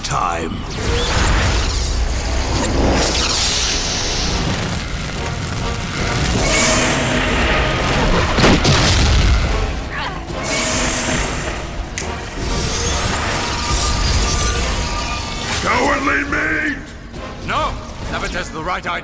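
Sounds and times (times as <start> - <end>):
dramatic score music: 0.0 - 19.0
sweeping whooshes: 0.6 - 5.2.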